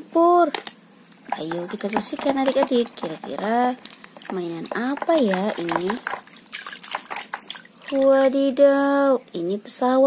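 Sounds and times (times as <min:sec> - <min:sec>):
water splashing in plastic basin: 0:01.2 - 0:08.4.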